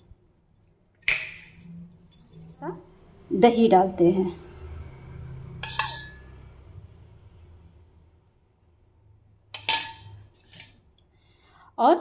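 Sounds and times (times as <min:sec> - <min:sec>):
metal spoon clinking on dishware: 0:05.6 - 0:06.4, 0:09.6 - 0:11.0.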